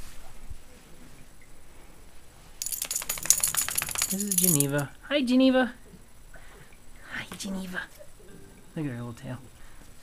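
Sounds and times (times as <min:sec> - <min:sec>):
dog collar tags jingling: 0:02.6 - 0:04.9.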